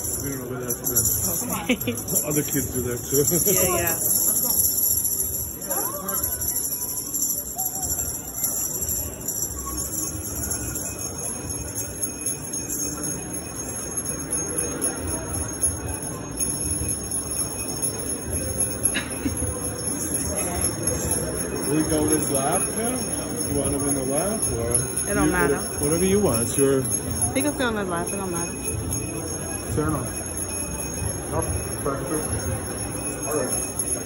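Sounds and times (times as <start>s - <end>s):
murmur of voices: 0.0s - 34.0s
small bells jingling: 0.0s - 34.0s.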